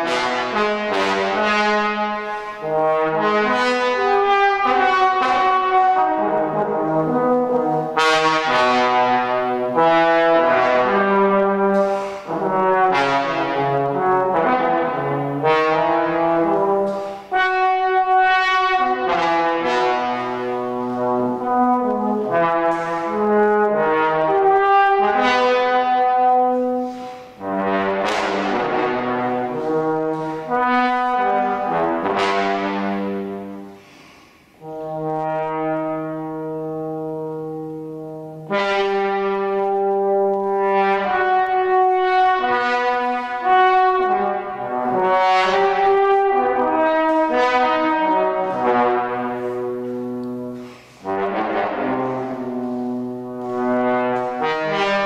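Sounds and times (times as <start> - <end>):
trombone solo: 0.0 - 33.8, 34.6 - 55.0.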